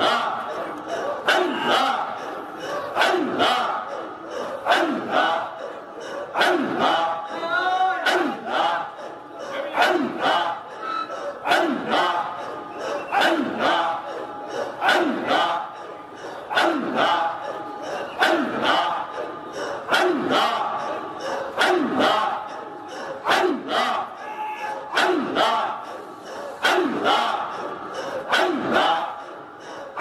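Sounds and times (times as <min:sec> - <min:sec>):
men chanting in unison: 0:00.0 - 0:30.0.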